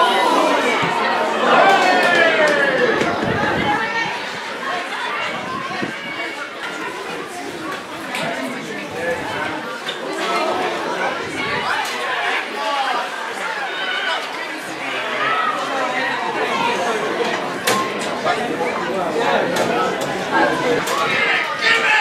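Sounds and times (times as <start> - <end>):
voices chattering: 0.0 - 22.0.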